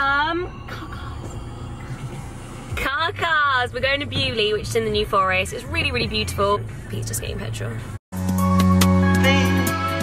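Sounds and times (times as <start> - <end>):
low steady car hum: 0.0 - 8.0.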